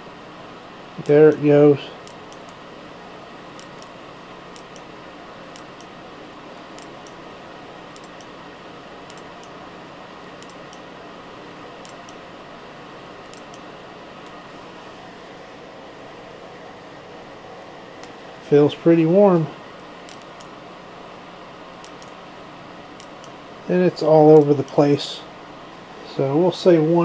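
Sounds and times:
heater fan blowing air: 0.0s - 27.0s.

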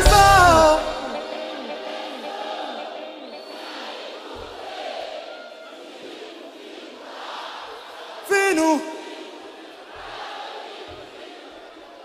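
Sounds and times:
crowd voices in a hall: 0.0s - 12.0s.

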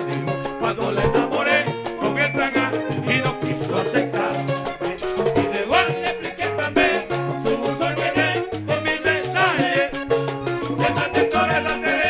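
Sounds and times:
man singing: 0.0s - 10.1s, 10.7s - 12.0s
button accordion melody: 0.0s - 12.0s
hand drum and percussion: 0.0s - 12.0s.

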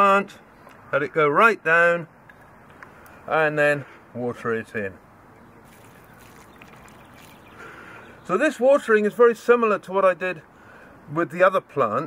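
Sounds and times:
water trickling into wet soil: 5.4s - 8.4s
air bubbling gurgle: 5.7s - 7.6s.

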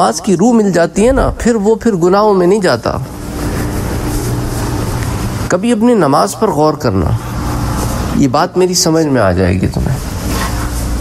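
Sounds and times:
motor humming with hiss: 3.0s - 5.5s.

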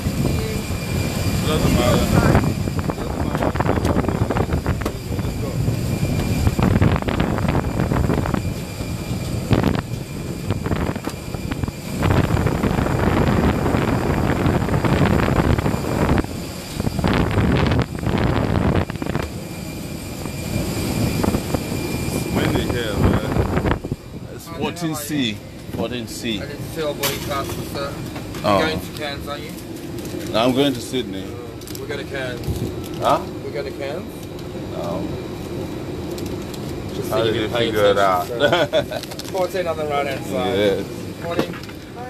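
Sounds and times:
wind buffeting microphone: 0.0s - 31.0s
aircraft engine roar: 0.0s - 42.0s
high whine: 0.0s - 42.0s.

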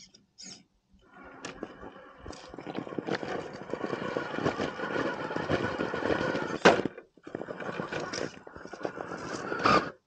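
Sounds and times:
electric motor whining: 1.1s - 10.0s
tires clicking and scraping on stone: 1.2s - 10.0s.

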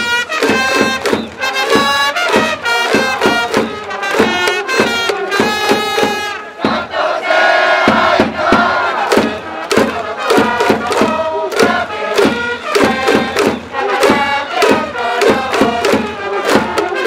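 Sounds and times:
crowd chanting and shouting: 0.0s - 17.0s
steady drumbeat: 0.0s - 17.0s.

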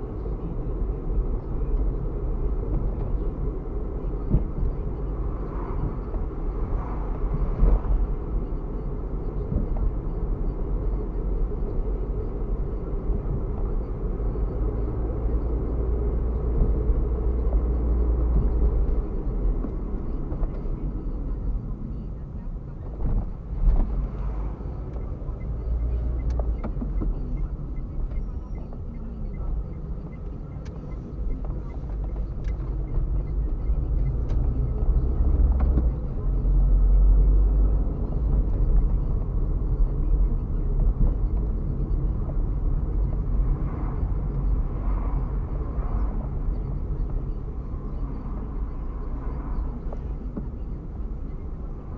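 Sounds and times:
car engine and tyre rumble: 0.0s - 51.9s.

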